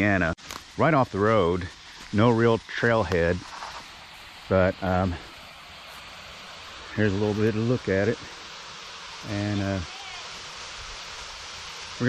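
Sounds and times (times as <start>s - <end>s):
creek rushing over rocks: 0.0s - 12.0s
small waterfall: 0.0s - 12.0s.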